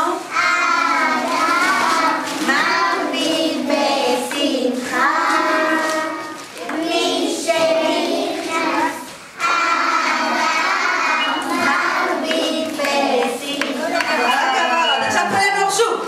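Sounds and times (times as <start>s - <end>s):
young children singing: 0.0s - 14.3s.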